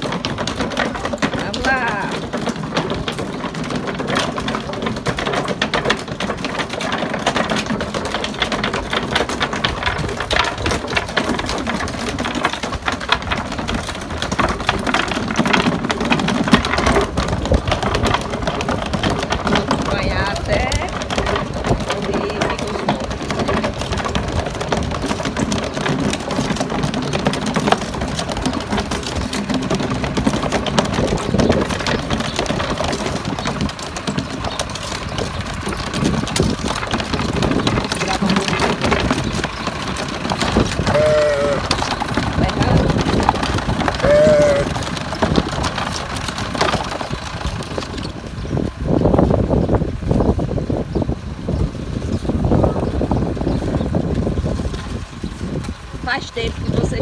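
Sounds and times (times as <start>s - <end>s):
footsteps: 0.0s - 48.3s
hooves: 0.0s - 57.0s
wooden cart rattling over cobblestones: 0.0s - 57.0s
short calls: 40.8s - 41.8s, 44.0s - 44.8s.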